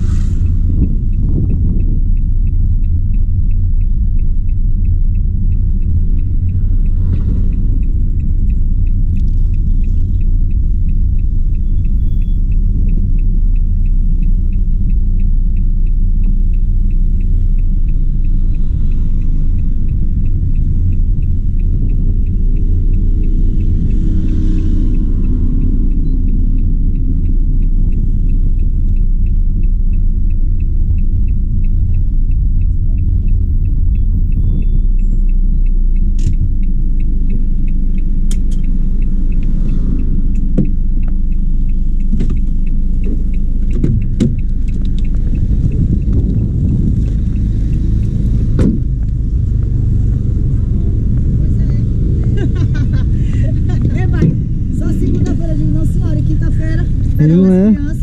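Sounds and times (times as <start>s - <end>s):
turn indicator ticking: 0.0s - 58.0s
van engine running: 0.0s - 58.0s.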